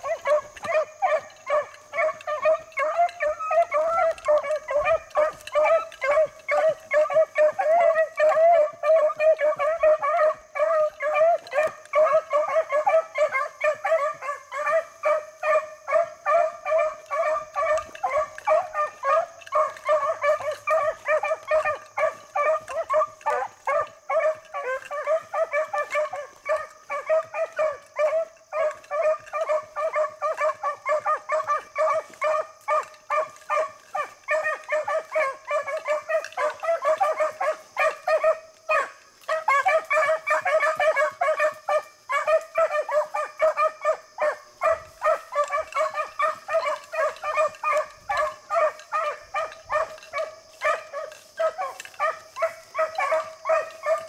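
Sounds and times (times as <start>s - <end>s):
dogs baying: 0.0s - 54.0s.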